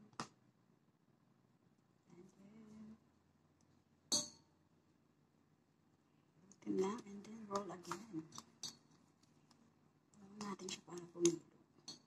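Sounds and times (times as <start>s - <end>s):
metal kitchenware clanging: 4.1s - 4.4s.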